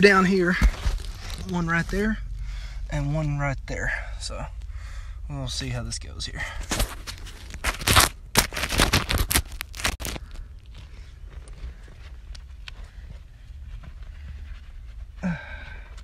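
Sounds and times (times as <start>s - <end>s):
low steady rumble: 0.0s - 16.0s
phone handling crunching: 6.6s - 11.6s.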